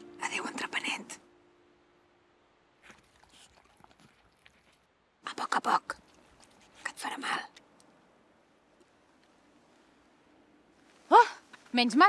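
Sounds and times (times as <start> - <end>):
faint held music note: 0.0 - 2.3
soft rustles: 2.8 - 4.9, 5.9 - 7.4.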